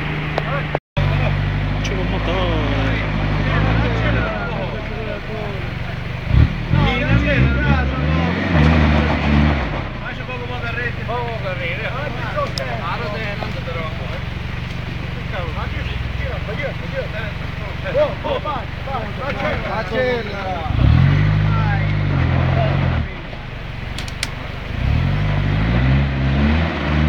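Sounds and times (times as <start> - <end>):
four-wheel drive engine revving: 0.0 - 27.0.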